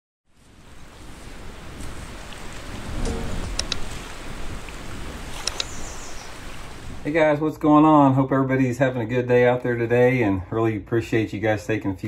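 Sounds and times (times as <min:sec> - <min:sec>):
waves washing on shore: 0:00.4 - 0:07.1
short high-pitched sounds: 0:03.0 - 0:03.8.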